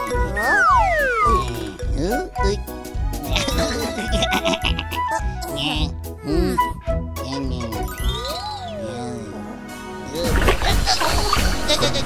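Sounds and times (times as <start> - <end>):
cartoon background music: 0.0 - 12.0.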